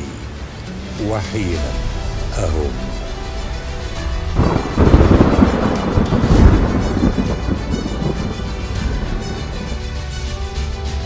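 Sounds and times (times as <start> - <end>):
background music: 0.0 - 11.0
thunder crack and rumble: 2.0 - 9.8.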